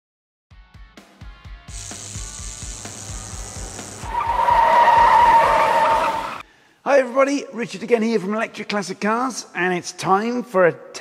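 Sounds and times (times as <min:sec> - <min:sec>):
loud screeching sound effect: 0:04.0 - 0:06.4.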